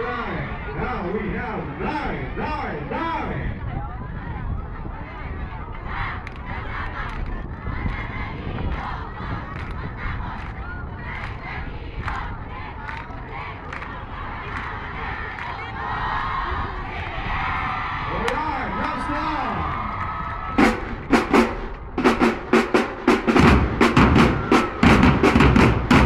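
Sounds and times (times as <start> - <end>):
crowd cheering and shouting: 0.0 - 21.1, 24.1 - 25.3
marching drumline with bass drums: 19.0 - 26.0.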